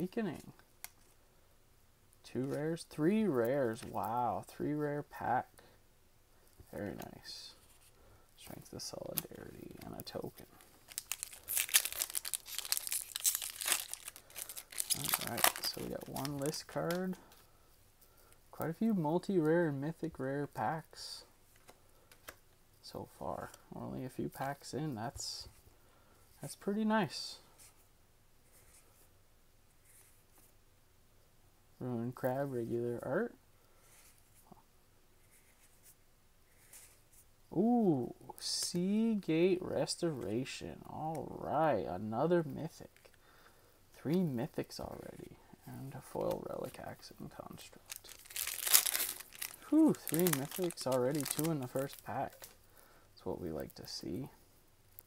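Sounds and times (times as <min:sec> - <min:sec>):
trading cards rustling: 0:06.6 - 0:17.5, 0:44.0 - 0:54.2
foil wrapper crinkling: 0:10.0 - 0:17.2, 0:47.8 - 0:52.6.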